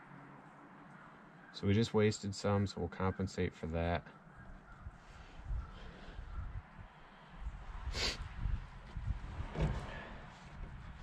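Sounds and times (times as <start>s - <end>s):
low uneven rumble: 4.7s - 11.0s.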